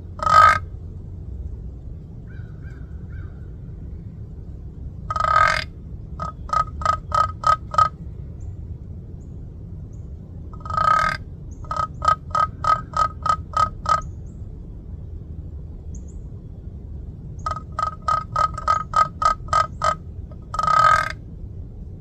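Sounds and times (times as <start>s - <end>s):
turkey call raspy yelps: 0.2s - 0.7s, 5.1s - 8.0s, 10.6s - 14.1s, 17.4s - 21.2s.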